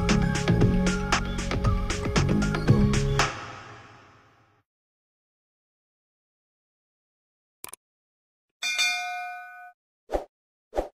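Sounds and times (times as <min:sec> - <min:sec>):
notification bell ding: 0:08.6 - 0:09.8.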